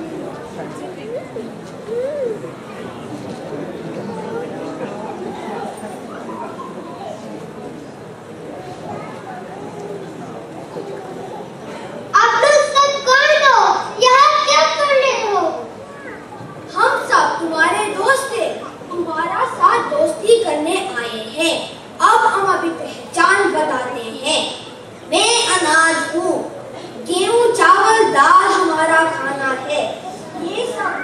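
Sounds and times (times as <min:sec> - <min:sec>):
murmur of voices: 0:00.0 - 0:31.0
child speaking on stage: 0:10.8 - 0:31.0.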